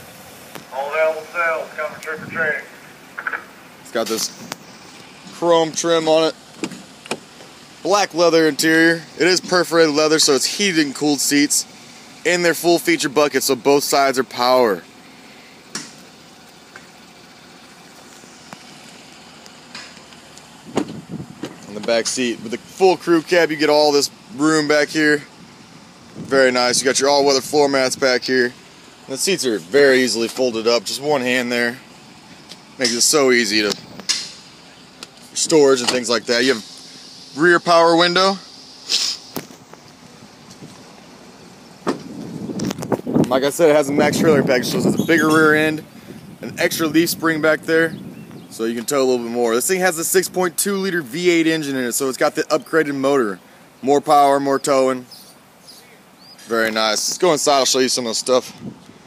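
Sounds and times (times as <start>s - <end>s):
faint outdoor hiss: 0.0s - 59.0s.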